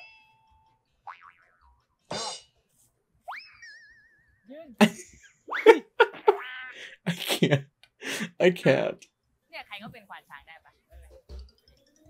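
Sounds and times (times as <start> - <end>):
wobbling boing: 1.1 - 2.3.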